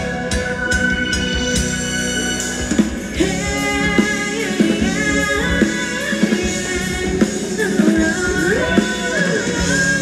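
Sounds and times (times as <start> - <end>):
band playing dance music: 0.0 - 10.0
person singing: 3.1 - 10.0.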